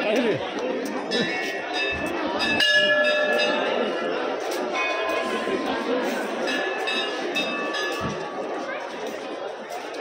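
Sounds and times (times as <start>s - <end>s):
crowd chatter: 0.0s - 10.0s
temple bell ringing: 0.9s - 8.7s.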